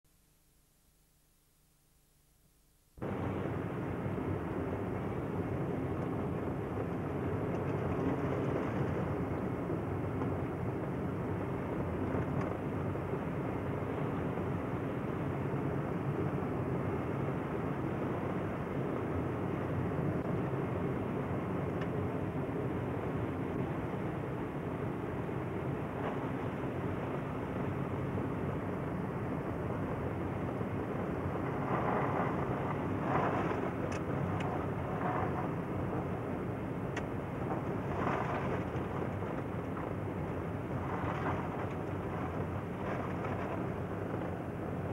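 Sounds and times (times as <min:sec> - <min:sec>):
car engine and tyre noise: 0:03.0 - 0:44.9.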